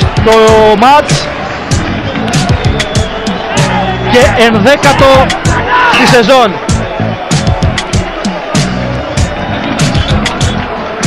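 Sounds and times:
stadium crowd cheering and chanting: 0.0 - 11.0.

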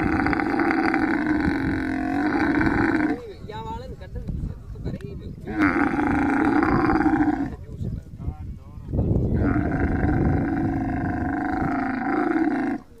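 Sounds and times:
camel calling: 0.0 - 3.3, 5.4 - 7.6, 9.3 - 13.0.

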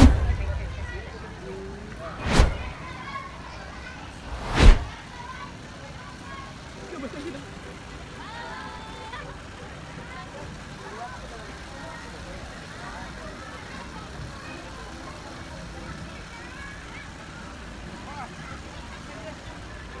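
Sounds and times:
low rumble: 0.0 - 2.8, 4.2 - 5.0
people talking and calling out: 0.0 - 20.0.

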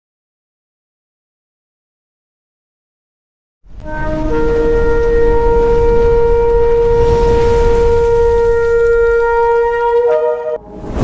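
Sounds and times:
low rumble: 3.7 - 10.0
shofar blast: 3.8 - 11.0.

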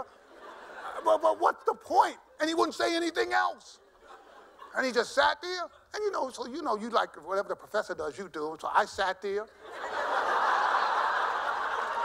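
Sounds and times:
audience laughter: 0.0 - 1.3, 3.9 - 5.1, 9.6 - 12.0.

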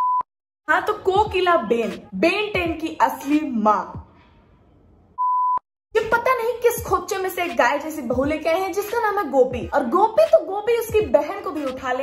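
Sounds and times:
high single-pitch test beep: 0.0 - 0.3, 5.2 - 5.6.

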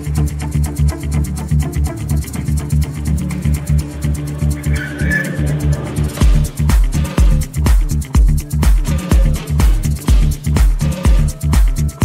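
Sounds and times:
high sustained tone: 0.0 - 6.7
electronic dance music: 0.0 - 12.0.

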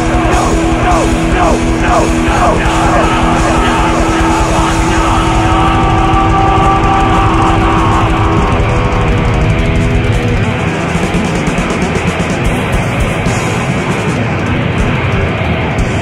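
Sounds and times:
distorted electric guitars: 0.0 - 16.0
fast drumming: 0.0 - 16.0.

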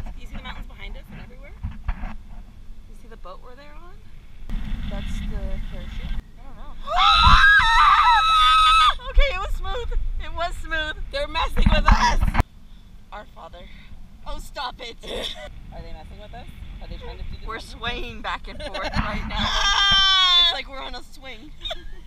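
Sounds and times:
wind rumbling on microphone: 0.0 - 22.0
high-pitched scream: 6.8 - 9.0, 19.4 - 20.6
women talking and laughing: 8.7 - 12.4, 16.8 - 22.0.

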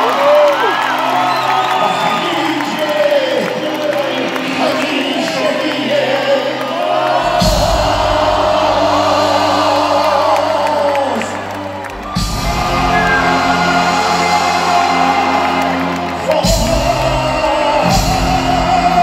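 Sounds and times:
crowd whooping and cheering: 0.0 - 4.4, 10.9 - 16.5
live pop band playing: 11.9 - 19.0
held gliding vocal: 12.6 - 19.0.

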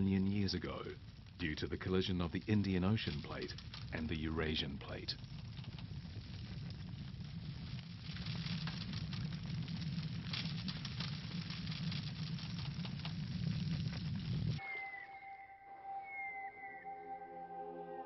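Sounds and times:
soft music with long held tones: 14.6 - 18.0.

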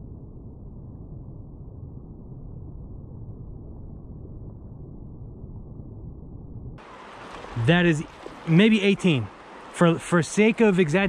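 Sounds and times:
muffled flowing creek water: 6.8 - 11.0.

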